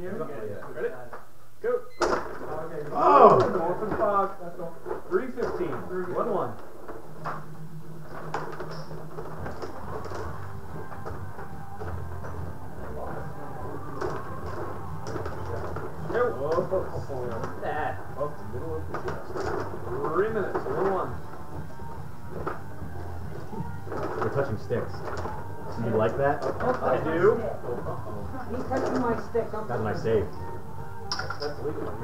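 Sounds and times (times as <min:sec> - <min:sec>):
indistinct background voices: 0:02.8 - 0:32.0.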